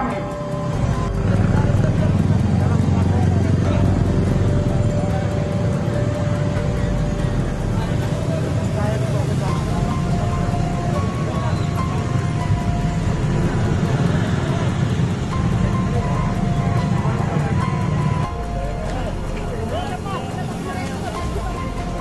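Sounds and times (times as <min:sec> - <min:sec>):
crowd voices: 0:00.0 - 0:22.0
street traffic: 0:00.0 - 0:22.0
vehicle engines rumbling: 0:00.0 - 0:22.0.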